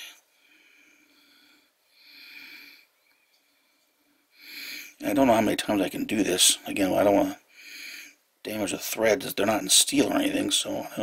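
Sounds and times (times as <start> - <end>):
soft breathing through nose: 0.0 - 5.0, 7.5 - 8.2.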